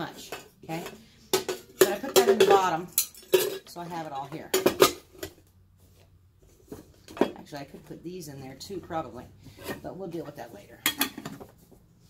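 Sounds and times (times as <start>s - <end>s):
items handled in metal pot: 0.0s - 5.4s.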